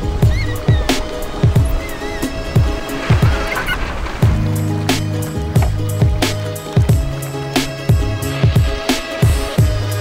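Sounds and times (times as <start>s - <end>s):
music with kick drum and synth: 4.4s - 10.0s.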